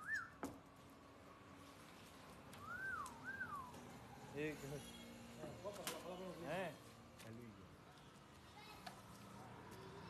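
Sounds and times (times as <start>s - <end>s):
whistled notes: 0.0s - 0.4s, 2.6s - 3.8s.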